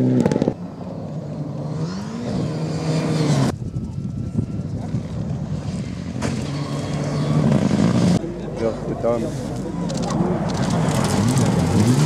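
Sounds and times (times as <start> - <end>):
spectators' voices: 8.2 - 11.5.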